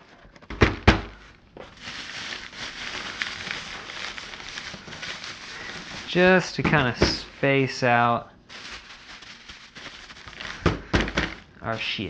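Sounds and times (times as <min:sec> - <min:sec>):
foam packing peanuts rustling: 0:00.0 - 0:12.0
plastic bag rustling: 0:00.0 - 0:12.0.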